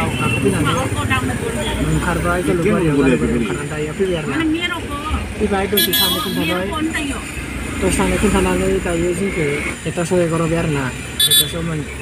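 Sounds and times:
engine and road rumble: 0.0s - 12.0s
horn toot: 5.8s - 6.6s, 11.2s - 11.6s.

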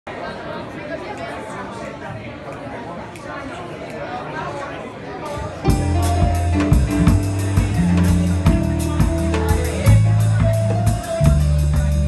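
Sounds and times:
crowd chatter indoors: 0.1s - 12.0s.

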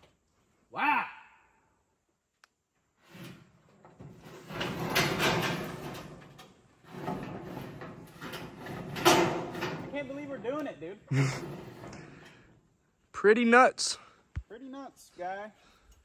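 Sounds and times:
roofing panel scraping on wood: 3.0s - 9.9s.

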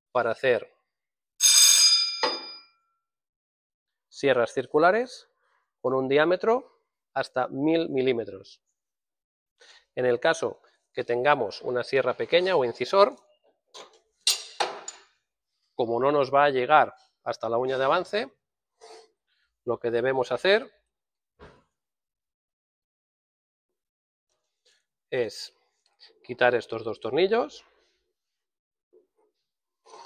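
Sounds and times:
metal clank with ringing tones: 1.4s - 2.7s.

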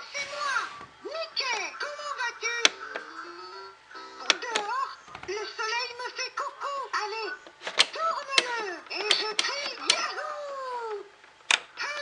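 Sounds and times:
toy voice speaking: 0.3s - 11.0s.

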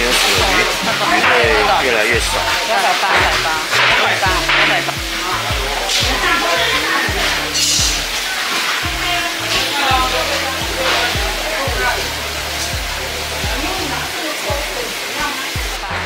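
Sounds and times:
background music with bass: 0.0s - 16.0s
bubbling water hiss: 0.0s - 16.0s.

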